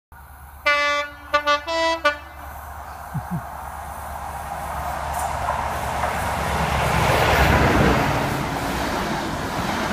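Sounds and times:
train horn blasts: 0.6 - 2.6.

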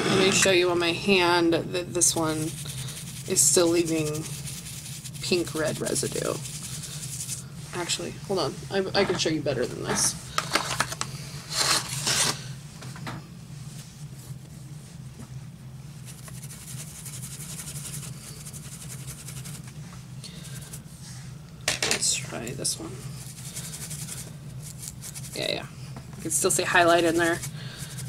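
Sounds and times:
steady low hum: 0.0 - 28.0
brush rubbing against tissue: 1.9 - 8.0, 15.9 - 20.9, 23.0 - 25.6, 26.3 - 28.0.

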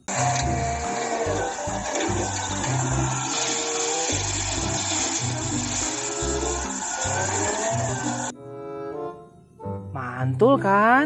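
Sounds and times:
wheel loader rushing noise: 0.0 - 8.3.

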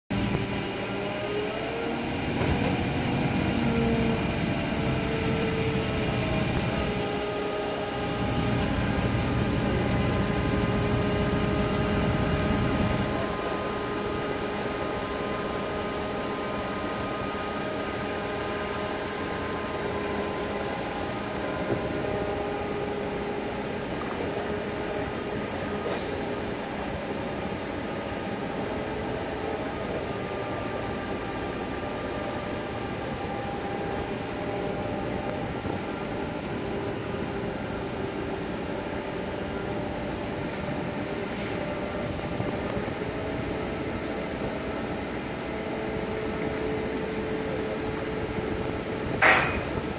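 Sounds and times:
diesel engine rumble: 0.1 - 49.9
hydraulic whine: 0.1 - 49.9.

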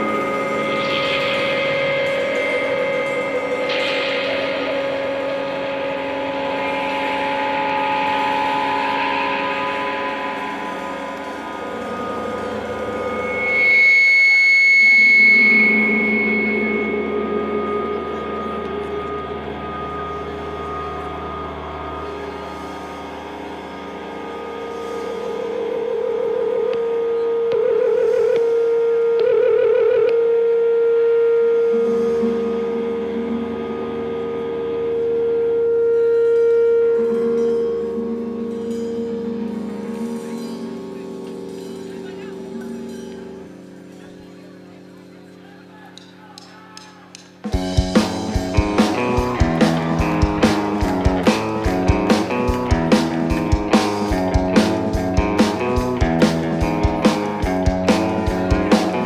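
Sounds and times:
bright high guitar note: 0.0 - 29.2, 30.0 - 46.2, 47.4 - 59.0
steady pulsing note: 0.0 - 45.4
echoing electric guitar drones: 0.0 - 59.0.

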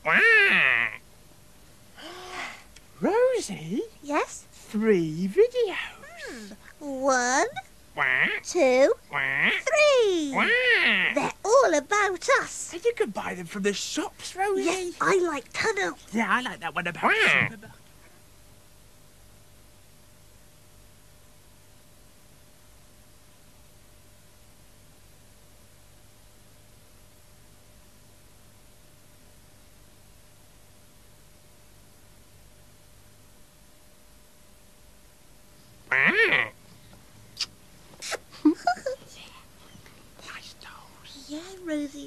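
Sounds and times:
duck quack: 0.0 - 1.0, 8.0 - 8.5, 9.1 - 9.7, 10.4 - 11.3, 17.0 - 17.6, 35.9 - 36.6
high puppet voice cry: 0.0 - 1.0, 8.2 - 11.5, 17.0 - 17.5, 35.9 - 36.5
faint tape hiss: 0.0 - 42.0.

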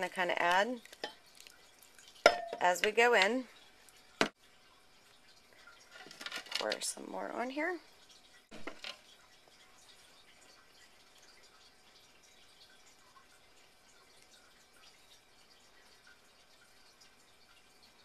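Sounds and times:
liquid dripping onto bread: 0.4 - 6.4, 7.9 - 18.0.

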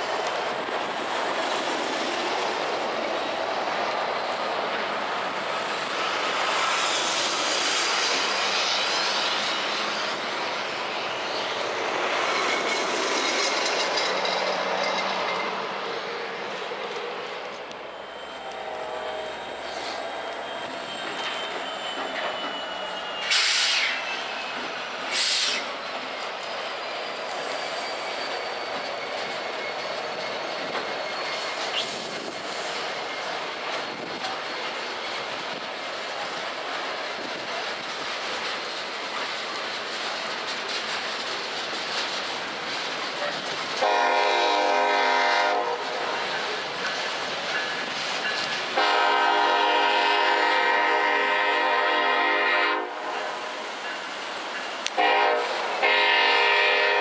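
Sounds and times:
train wheels clattering over rails: 0.0 - 17.7, 20.5 - 50.6
short hissing bursts: 25.1 - 25.8
locomotive air horn blasts: 43.8 - 46.2, 48.8 - 53.4, 55.0 - 57.0.

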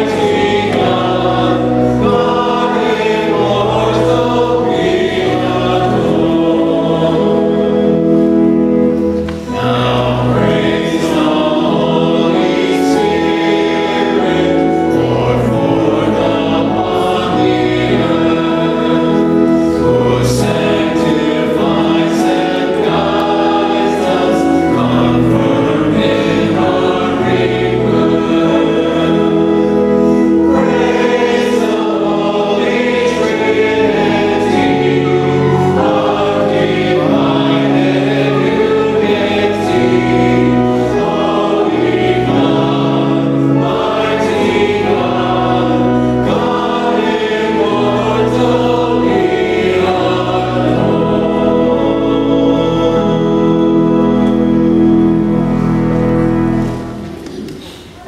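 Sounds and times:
choir singing a hymn: 0.0 - 58.0
pipe organ chords: 0.0 - 58.0.

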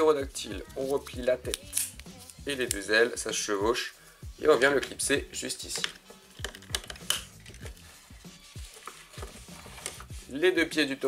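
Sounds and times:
plastic toy parts clicking: 5.8 - 7.6.

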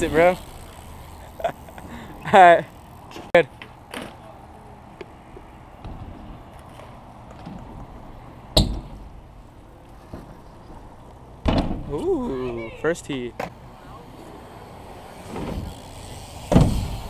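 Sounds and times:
bike tyres rolling on concrete: 0.0 - 17.0
bike landing thud: 8.5 - 9.2, 11.4 - 12.0, 15.2 - 17.0.

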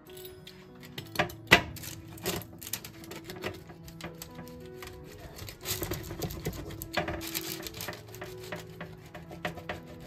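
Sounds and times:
pizza cutter crunching crust: 1.9 - 10.0.

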